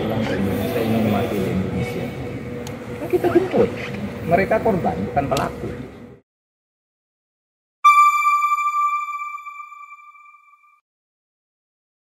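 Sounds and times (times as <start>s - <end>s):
electronic bell-like chime: 7.9s - 10.8s.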